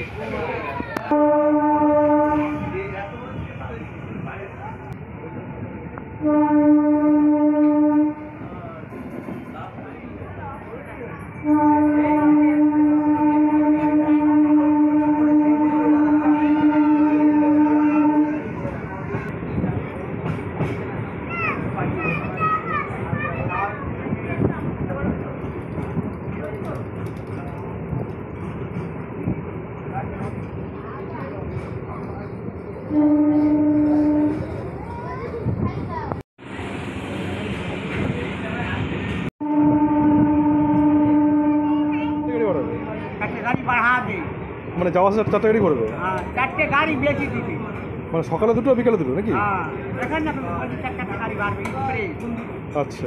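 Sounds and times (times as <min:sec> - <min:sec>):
moving train rumble: 0:00.0 - 0:53.0
train horn blast: 0:01.1 - 0:02.8, 0:06.2 - 0:08.5, 0:11.4 - 0:18.7, 0:32.9 - 0:34.6, 0:39.4 - 0:42.9.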